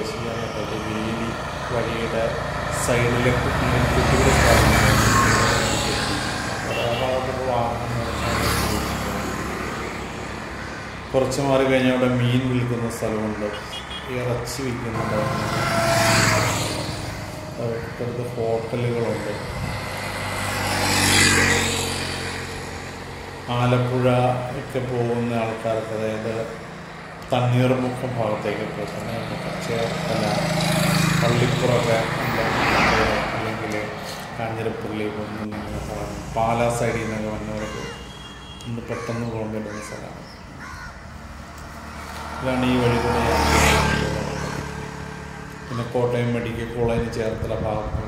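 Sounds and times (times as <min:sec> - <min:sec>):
man's voice: 0:00.0 - 0:08.9, 0:11.2 - 0:15.5, 0:31.2 - 0:38.0, 0:38.7 - 0:40.2, 0:45.7 - 0:48.0
vehicle passing by: 0:00.0 - 0:38.3, 0:38.9 - 0:48.0
crows cawing: 0:08.5 - 0:11.1, 0:36.8 - 0:45.4.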